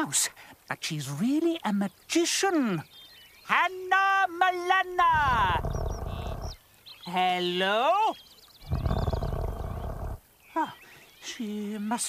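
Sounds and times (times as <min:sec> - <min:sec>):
low rough growl: 0:05.1 - 0:06.6, 0:08.6 - 0:10.2.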